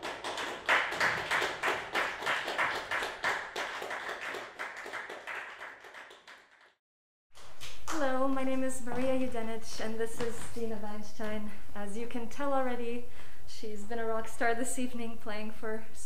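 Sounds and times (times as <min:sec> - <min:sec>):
small group applauding: 0:00.0 - 0:06.8.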